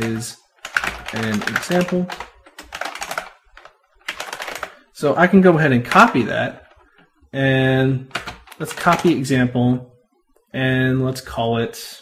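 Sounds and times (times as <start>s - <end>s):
typing on computer keyboard: 0.0s - 4.9s, 8.0s - 9.3s.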